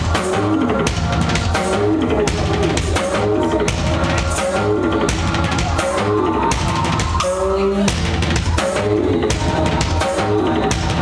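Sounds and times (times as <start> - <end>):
drum kit played hard: 0.0 - 11.0.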